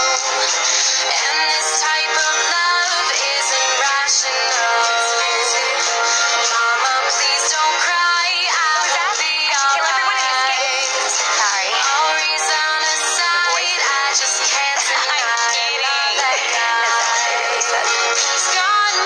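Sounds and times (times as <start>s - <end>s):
pop song with processed vocal: 0.0s - 19.0s.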